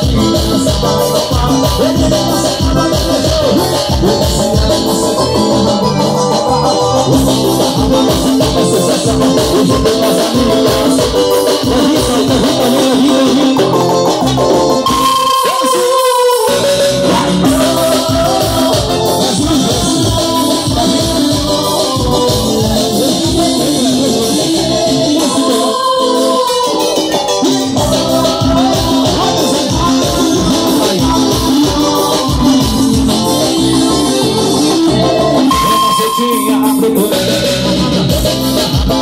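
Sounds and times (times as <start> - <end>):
drums and bass: 0.0 - 39.0
keyboard: 0.0 - 39.0
live band music: 0.0 - 39.0.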